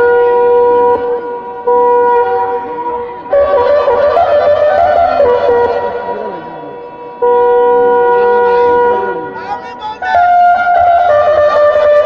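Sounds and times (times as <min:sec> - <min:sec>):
faint crowd voices: 0:00.0 - 0:12.0
horn long steady note: 0:00.0 - 0:12.0.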